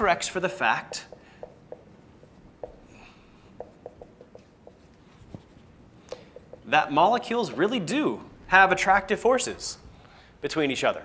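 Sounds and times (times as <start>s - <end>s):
marker squeaking on whiteboard: 0.8s - 7.8s.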